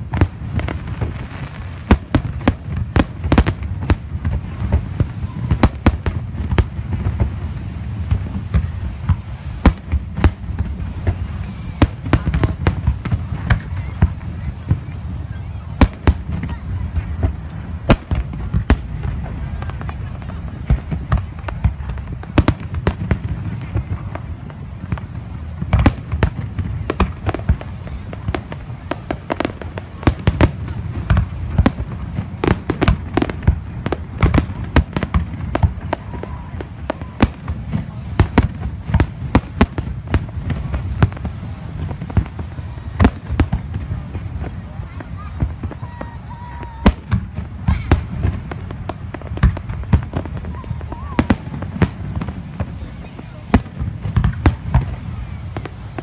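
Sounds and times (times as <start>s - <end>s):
continuous low rumble: 0.0s - 56.0s.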